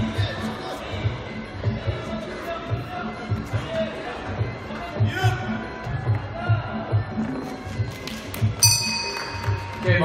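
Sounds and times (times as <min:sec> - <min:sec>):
bright bell ring: 0:08.6 - 0:10.0.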